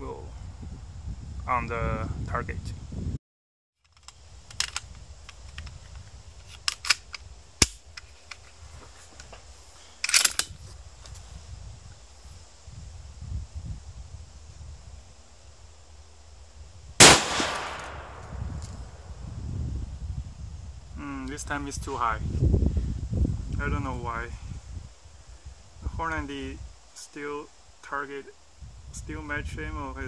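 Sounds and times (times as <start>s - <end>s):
rifle magazine and bolt clicks: 3.9s - 5.8s, 6.4s - 8.4s, 10.0s - 10.6s
rifle shot with echo: 17.0s - 18.6s.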